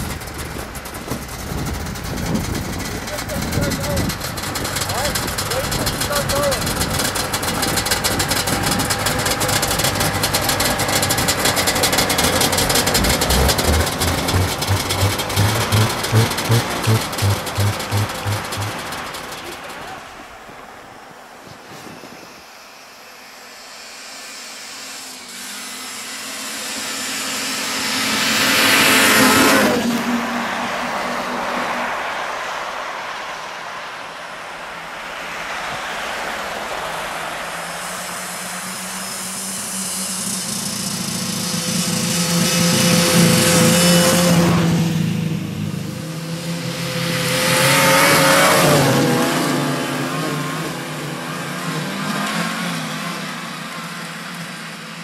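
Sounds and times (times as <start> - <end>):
snowmobile engines passing: 0.0 - 55.0.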